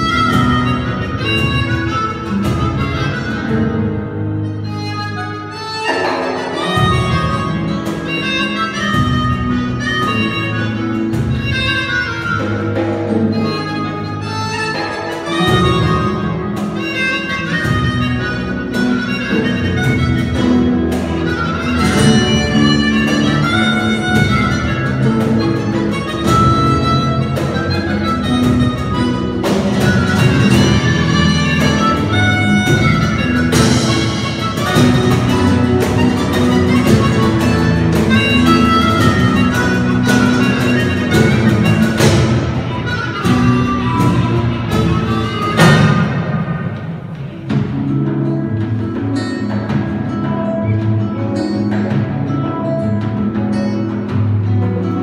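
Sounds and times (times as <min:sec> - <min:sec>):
electric bass: 0:00.0 - 0:55.0
flamenco guitar: 0:00.0 - 0:55.0
harmonica melody: 0:00.0 - 0:55.0
percussion hits: 0:00.0 - 0:55.0.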